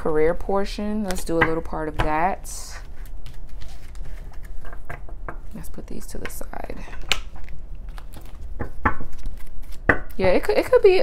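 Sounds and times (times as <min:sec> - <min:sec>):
cards snapping and tapping: 0:07.0 - 0:10.2.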